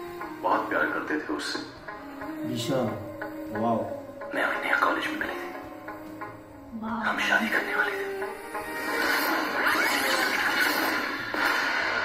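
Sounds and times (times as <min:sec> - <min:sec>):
trailer music: 0:00.0 - 0:12.0
person speaking over music: 0:00.4 - 0:05.5, 0:06.7 - 0:08.2.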